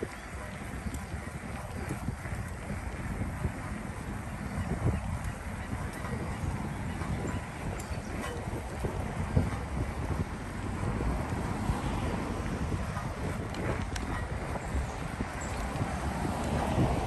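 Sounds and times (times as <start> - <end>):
wind rushing over microphone: 0.0 - 17.0.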